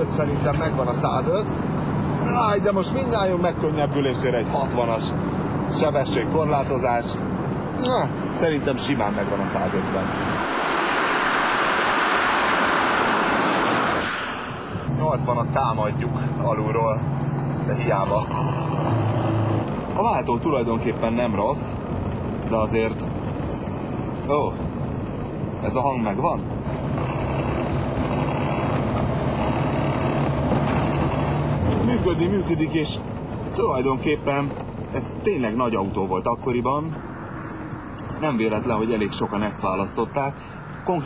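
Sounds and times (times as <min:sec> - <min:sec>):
car engine running: 0:00.0 - 0:37.1
road and wind noise: 0:00.0 - 0:41.0
car passing at speed: 0:04.6 - 0:20.3.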